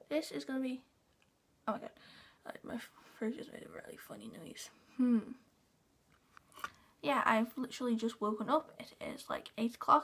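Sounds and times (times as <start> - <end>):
woman humming: 5.0 - 5.5.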